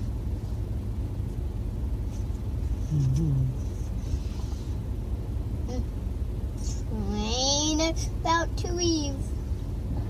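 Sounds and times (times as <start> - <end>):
vehicle engine idling: 0.0 - 10.0
low voiced hum: 2.0 - 10.0.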